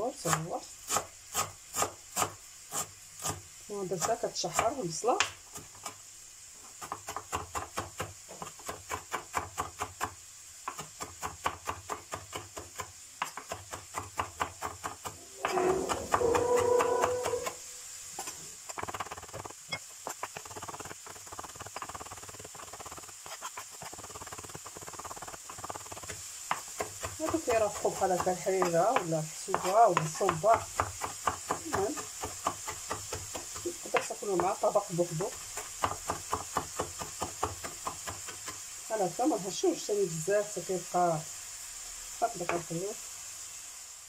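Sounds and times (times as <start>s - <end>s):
faint steady hiss: 0.0s - 44.0s
knife chopping on cutting board: 6.8s - 17.6s, 24.8s - 34.6s.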